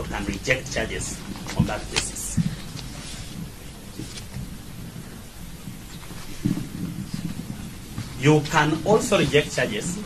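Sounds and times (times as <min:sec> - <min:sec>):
faint low rumble: 0:00.0 - 0:10.0
murmur: 0:00.0 - 0:10.0
room noise hiss: 0:00.0 - 0:10.0.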